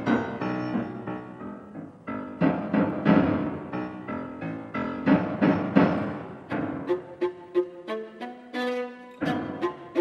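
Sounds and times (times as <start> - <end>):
piano low chords: 0.0 - 10.0
viola bowed notes: 6.8 - 10.0.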